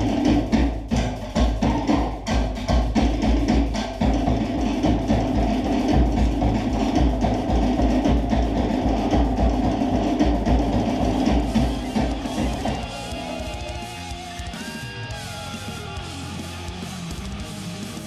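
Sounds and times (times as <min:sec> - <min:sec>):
polynesian dance music: 0:00.0 - 0:17.4
drums fast steady beat: 0:00.0 - 0:18.0.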